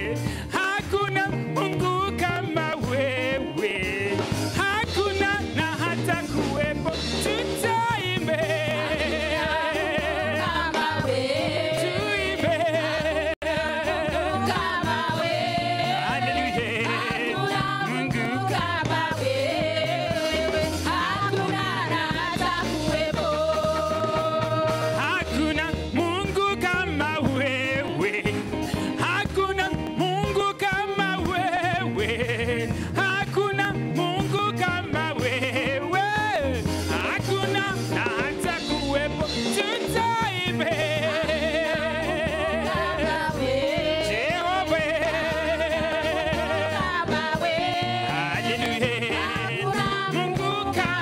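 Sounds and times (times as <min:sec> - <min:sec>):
held bass line: 0:00.0 - 0:51.0
steady drum beat: 0:00.0 - 0:51.0
choir singing into microphones: 0:02.7 - 0:26.0, 0:36.9 - 0:51.0.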